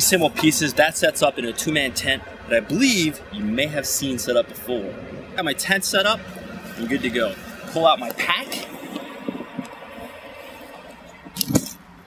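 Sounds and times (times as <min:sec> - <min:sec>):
traffic hiss: 0:00.0 - 0:12.0.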